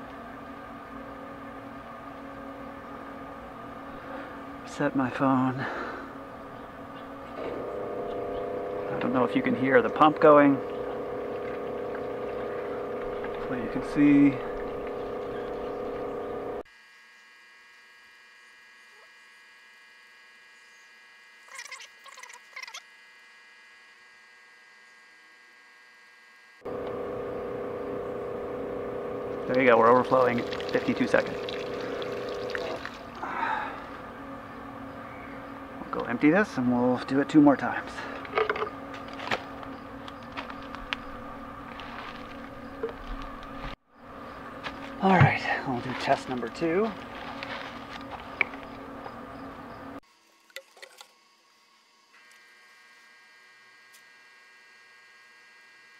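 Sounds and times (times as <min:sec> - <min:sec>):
pump humming: 0:00.0 - 0:18.7, 0:25.8 - 0:55.9
water pouring into plastic can: 0:29.3 - 0:33.2.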